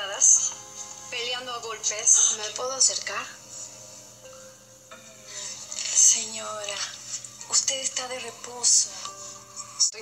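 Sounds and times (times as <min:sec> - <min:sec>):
faint steady hum: 0:00.0 - 0:10.0
soft hiss: 0:00.0 - 0:10.0.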